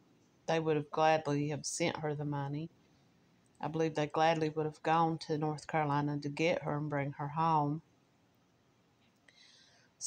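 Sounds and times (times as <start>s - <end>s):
person narrating: 0.5s - 2.7s, 3.6s - 7.8s
faint breath drawn in: 9.3s - 10.0s.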